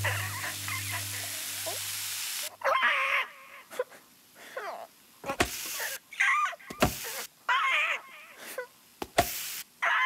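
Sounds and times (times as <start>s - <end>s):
low hum and hiss: 0.0s - 6.2s.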